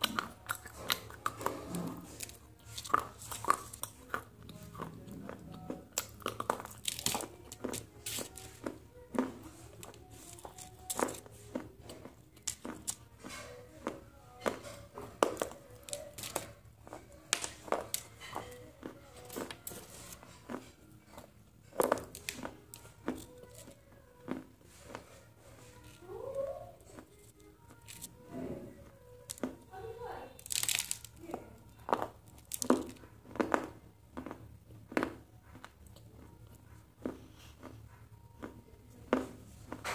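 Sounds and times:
crunching and chewing crisp food: 0:00.0 - 0:39.9
quiet background music: 0:00.0 - 0:39.9.

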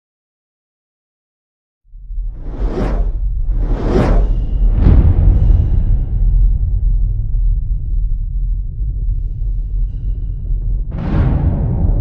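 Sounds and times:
deep low rumble: 0:01.9 - 0:12.0
whooshes: 0:02.2 - 0:07.4.

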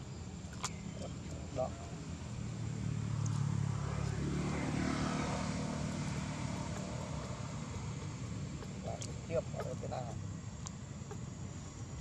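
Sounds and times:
engine drone passing: 0:00.0 - 0:12.0.

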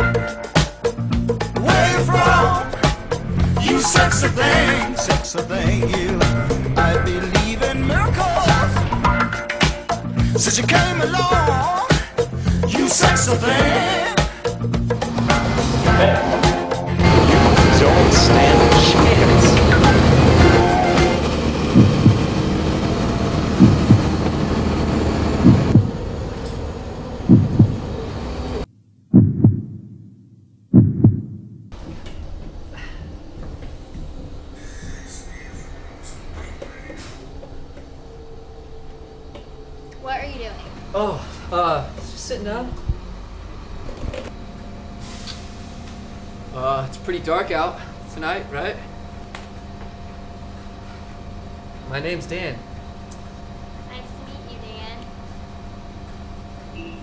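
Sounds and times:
bus engine drone inside cabin: 0:01.3 - 0:09.4, 0:14.9 - 0:28.7, 0:31.7 - 0:57.0
constant hum: 0:01.3 - 0:11.7, 0:14.8 - 0:28.7, 0:31.3 - 0:57.0
heartbeat thumps: 0:21.7 - 0:22.5, 0:23.4 - 0:24.4, 0:25.4 - 0:26.0, 0:27.2 - 0:27.9, 0:29.1 - 0:30.1, 0:30.7 - 0:31.7.

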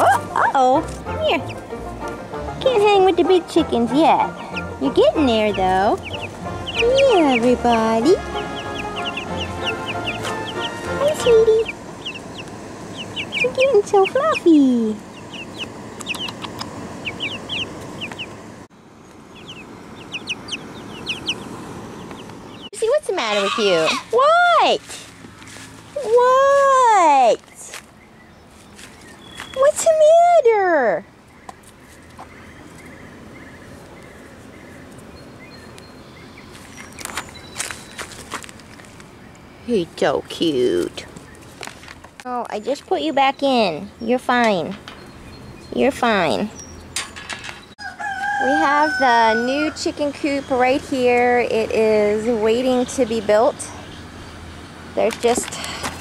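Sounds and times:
chicks peeping: 0:00.0 - 0:26.2, 0:47.6 - 0:55.5.

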